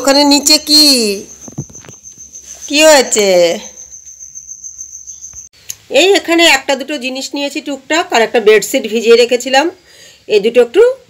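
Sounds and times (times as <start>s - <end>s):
cricket trilling: 0.0s - 5.5s.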